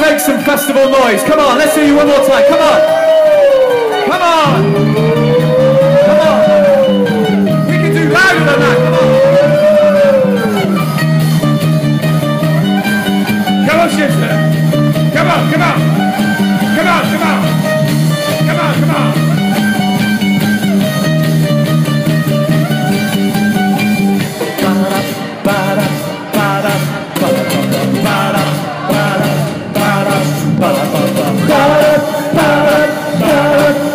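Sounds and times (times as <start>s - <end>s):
repeating bass line: 0.0s - 33.9s
ukulele band playing: 0.0s - 33.9s
voices shouting: 1.0s - 11.5s.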